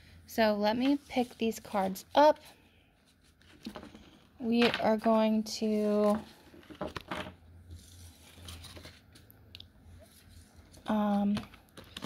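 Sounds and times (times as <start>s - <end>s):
cards sliding and rustling: 7.7s - 9.3s.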